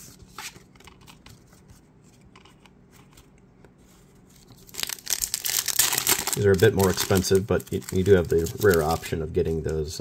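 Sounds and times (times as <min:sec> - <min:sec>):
plastic foil wrapper crinkling: 0:04.5 - 0:10.0
wrapper tearing open: 0:04.7 - 0:09.2.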